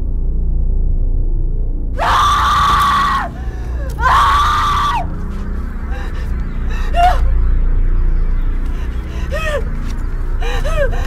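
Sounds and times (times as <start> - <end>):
low dark rumbling drone: 0.0 - 11.0
person screaming: 2.0 - 5.1.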